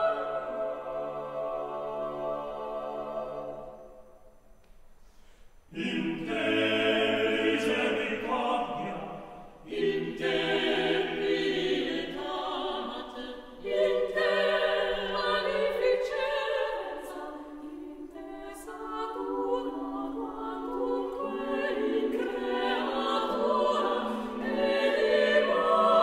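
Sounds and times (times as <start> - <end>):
choir singing a cappella: 0.0 - 4.2, 5.7 - 26.0.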